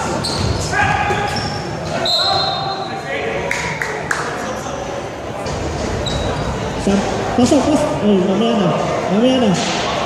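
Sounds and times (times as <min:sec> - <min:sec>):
shoes squeaking on court: 0:00.0 - 0:02.9, 0:05.9 - 0:06.6.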